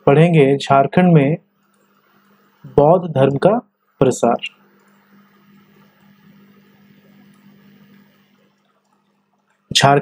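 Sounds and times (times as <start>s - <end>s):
background hum with hiss: 0.0s - 10.0s.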